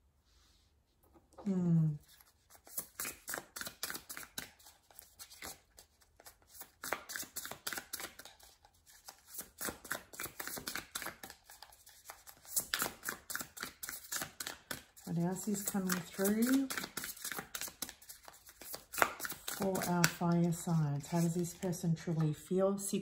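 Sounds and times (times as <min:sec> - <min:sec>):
cards being shuffled: 0:02.0 - 0:22.3.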